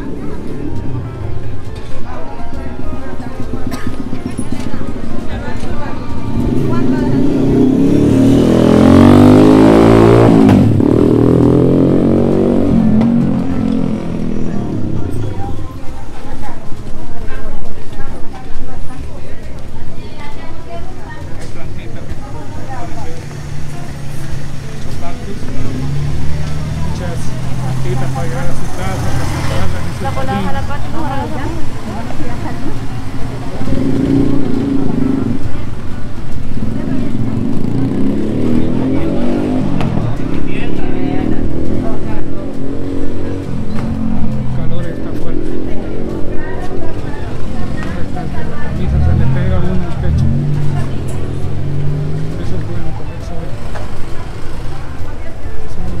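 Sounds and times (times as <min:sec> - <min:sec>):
people talking: 0:00.0 - 0:08.1, 0:12.4 - 0:56.0
vehicle engines running and passing: 0:00.0 - 0:56.0.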